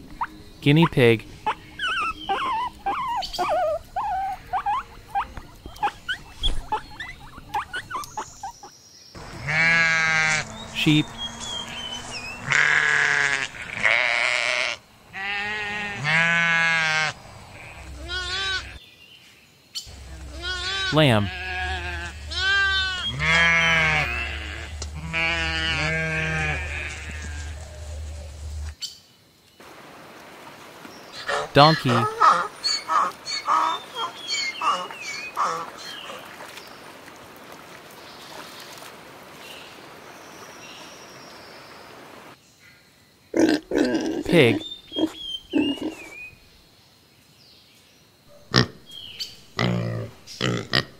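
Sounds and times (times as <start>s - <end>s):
donkey braying: 0.2s - 8.6s, 9.2s - 18.8s, 19.9s - 28.7s, 31.2s - 36.3s, 43.5s - 46.2s
sheep bleating: 9.2s - 18.8s, 20.0s - 27.7s
shallow stream trickling: 32.2s - 42.4s.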